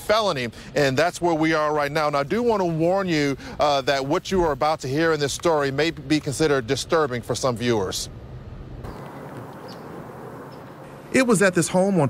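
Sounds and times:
low street hum: 0.0s - 12.0s
steady hiss: 0.0s - 12.0s
faint high chirp: 8.9s - 10.7s.

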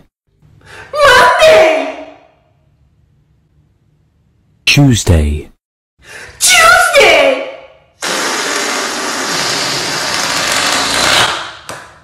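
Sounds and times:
balloon deflating hiss: 8.0s - 11.2s.

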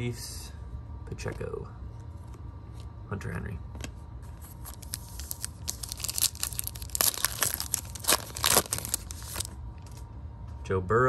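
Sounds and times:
foil wrapper tearing and crinkling: 4.5s - 10.0s.

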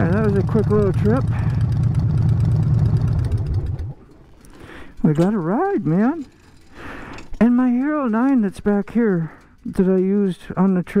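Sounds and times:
motorcycle engine idling: 0.0s - 4.0s.

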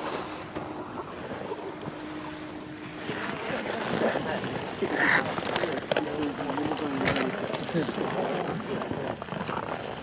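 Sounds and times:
faint even hum: 0.0s - 8.9s.

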